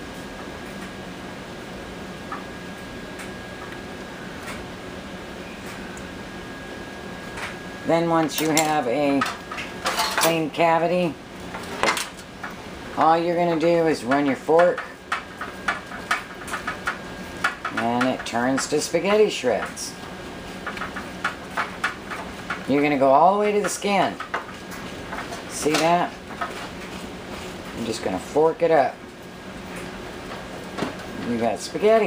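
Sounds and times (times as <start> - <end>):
low background hum: 0.0 - 32.0.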